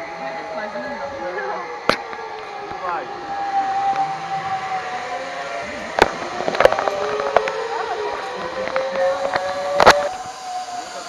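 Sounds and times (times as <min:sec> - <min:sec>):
zipline pulleys whining on cable: 0:00.0 - 0:11.0.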